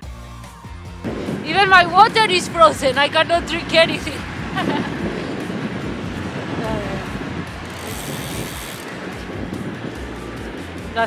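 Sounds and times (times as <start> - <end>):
bicycle tyre noise: 1.0 - 10.6
wind on microphone: 1.0 - 11.0.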